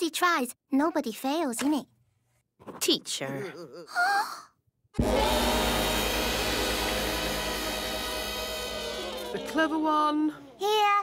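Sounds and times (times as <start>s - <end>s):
electric school bell ringing: 5.0s - 10.0s.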